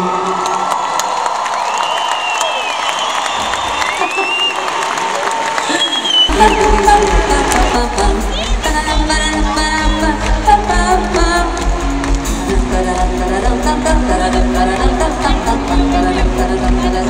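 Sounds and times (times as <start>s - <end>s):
crowd cheering and whistling: 0.0s - 10.1s
band with heavy bass: 6.3s - 17.0s.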